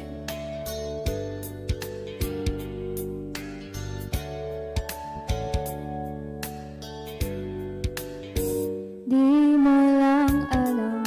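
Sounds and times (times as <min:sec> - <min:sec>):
backing music with guitar: 0:00.0 - 0:11.0
woman singing into microphone: 0:09.0 - 0:11.0.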